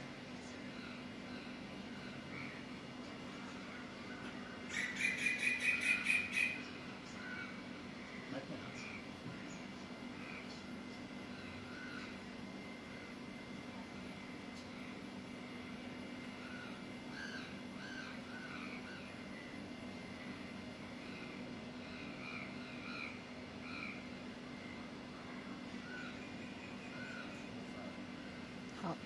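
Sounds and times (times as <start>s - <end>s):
birds calling: 0.4s - 13.1s, 16.2s - 29.0s.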